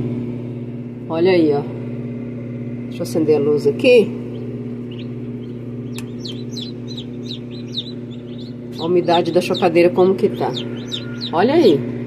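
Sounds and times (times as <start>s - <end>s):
incubator hum: 0.0s - 12.0s
chicks peeping: 4.2s - 11.8s.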